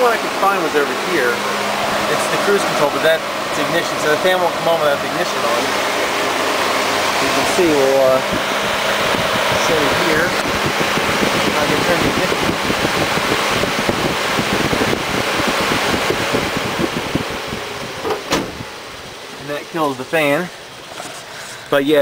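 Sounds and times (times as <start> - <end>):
electric cooling fan rushing air: 0.0 - 22.0.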